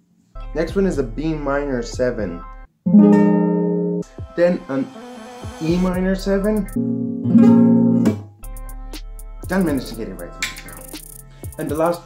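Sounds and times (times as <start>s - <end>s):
acoustic guitar chord ringing: 2.9s - 4.1s, 6.8s - 8.4s.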